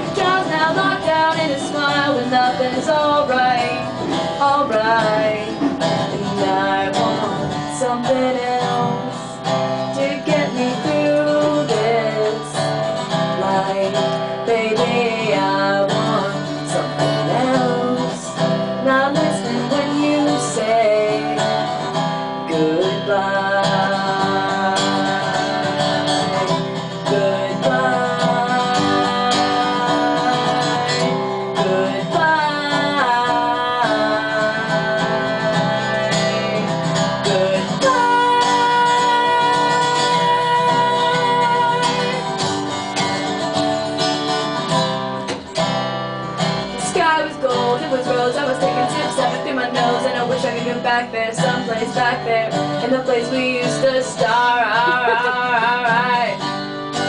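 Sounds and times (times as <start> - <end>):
acoustic guitar playing: 0.0 - 57.0.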